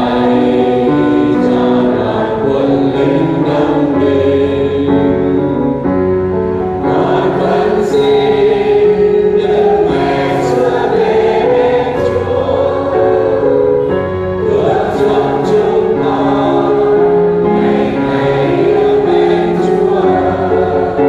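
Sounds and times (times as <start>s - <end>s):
choir singing a slow hymn: 0.0s - 21.0s.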